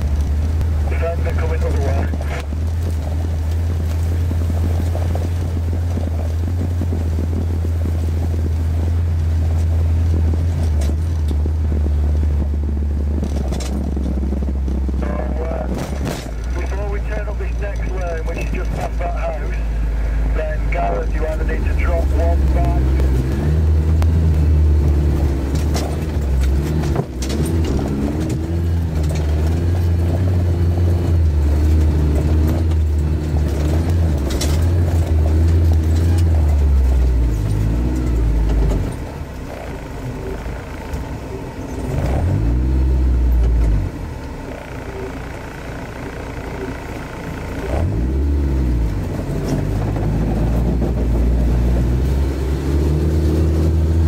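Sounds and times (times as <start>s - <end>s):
car engine running under load: 0.0s - 54.0s
sharp knocks from rough ground: 15.6s - 16.8s.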